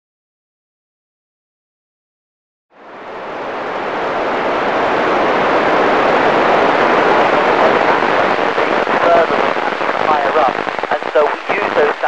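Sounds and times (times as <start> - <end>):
radio static hiss: 3.2 - 12.0.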